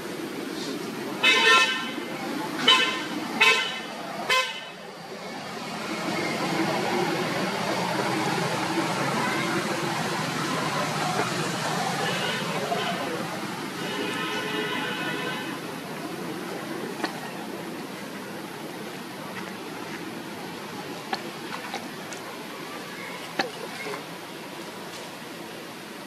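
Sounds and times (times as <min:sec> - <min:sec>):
vehicle horn blasts: 0:01.2 - 0:02.0, 0:02.7 - 0:04.8, 0:13.8 - 0:15.6.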